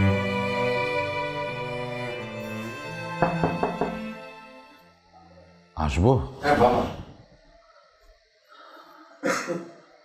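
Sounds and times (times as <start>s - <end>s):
background music: 0.0s - 6.9s.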